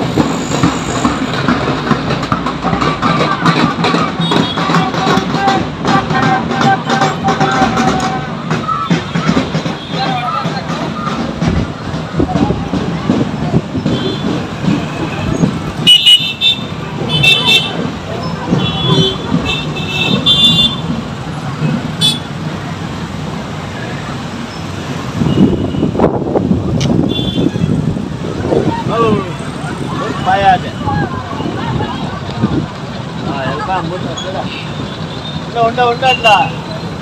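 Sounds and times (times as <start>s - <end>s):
crowd voices: 0.0s - 37.0s
motorbikes and traffic: 0.0s - 37.0s
vehicle horns beeping: 13.8s - 21.0s, 21.6s - 22.4s, 25.1s - 26.1s, 26.8s - 27.9s, 34.2s - 36.9s.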